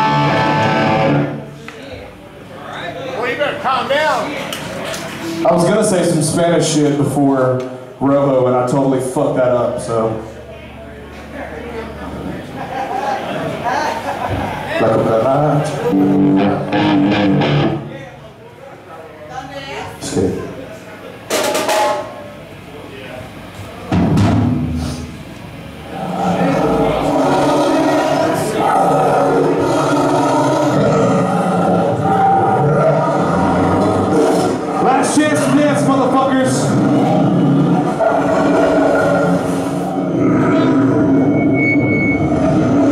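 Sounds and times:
metal band playing loudly: 0.0s - 1.4s, 16.1s - 17.9s
electric guitar sustained notes: 0.0s - 1.5s, 16.0s - 17.9s.

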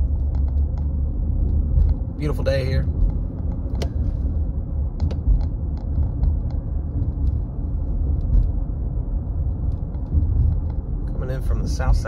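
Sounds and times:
car driving on paved road: 0.0s - 12.0s.

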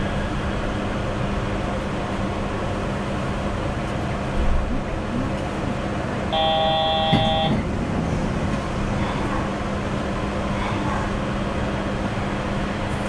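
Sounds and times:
train humming at station: 0.0s - 13.0s
electronic multi-pitch tone: 6.4s - 7.6s.

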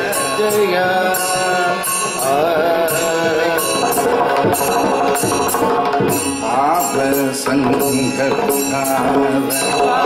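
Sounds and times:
harmonium: 0.0s - 10.0s
men singing devotional song: 0.0s - 10.0s.

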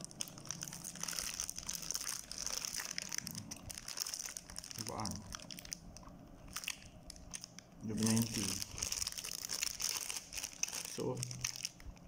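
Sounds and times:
man talking: 4.8s - 5.3s, 7.8s - 8.7s, 10.9s - 11.4s.

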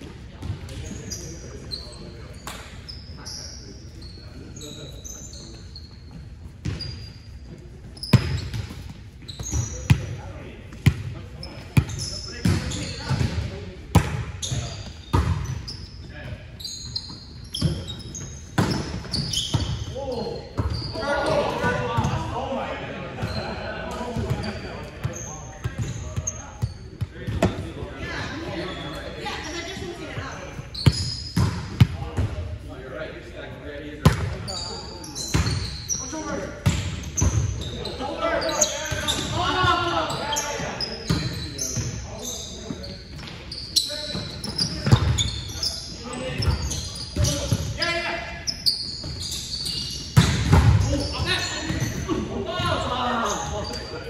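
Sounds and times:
players calling out and chatting: 0.1s - 54.0s.

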